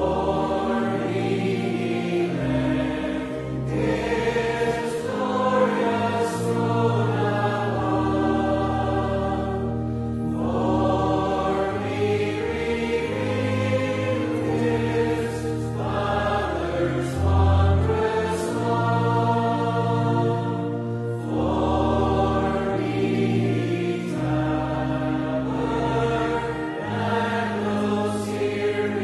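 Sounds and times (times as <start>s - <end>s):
congregation singing a hymn: 0.0s - 29.0s
organ accompaniment: 0.0s - 29.0s.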